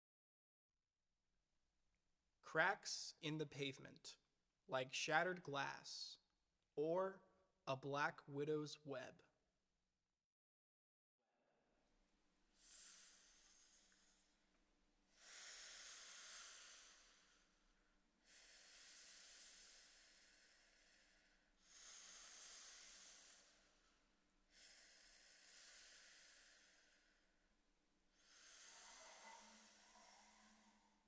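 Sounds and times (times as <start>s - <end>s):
hissing breath exhales: 15.2s - 17.6s, 28.2s - 31.0s.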